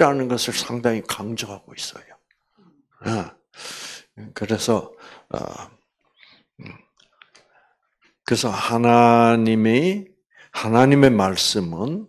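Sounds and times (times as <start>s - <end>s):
man saying uh into microphone: 3.0s - 3.3s.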